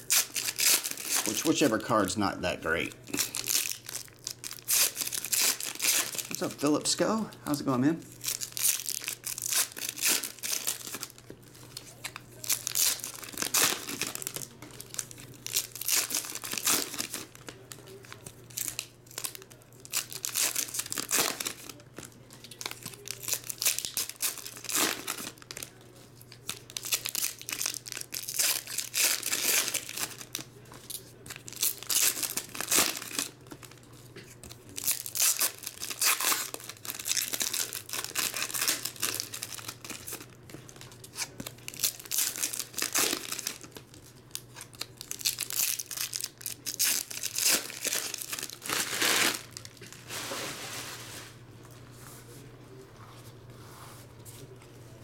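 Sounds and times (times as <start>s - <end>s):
foil wrappers tearing and crinkling: 0.0s - 1.8s, 2.8s - 6.9s, 7.5s - 51.3s.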